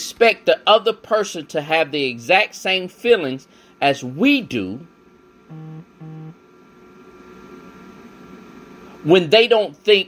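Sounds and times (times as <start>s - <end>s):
electrical hum and hiss: 0.0s - 10.0s.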